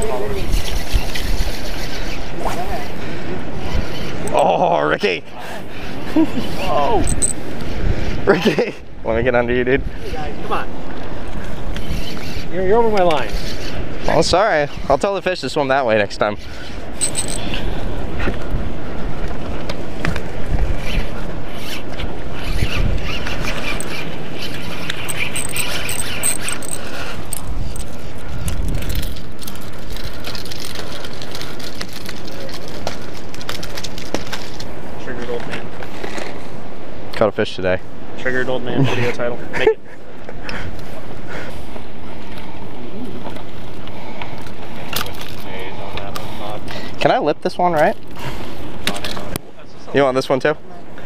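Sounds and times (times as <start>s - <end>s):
fishing reel being cranked: 0.0s - 3.0s, 5.7s - 7.4s, 11.8s - 15.2s, 16.4s - 17.7s, 20.8s - 28.1s
wind buffeting microphone: 0.0s - 4.3s, 5.6s - 30.4s.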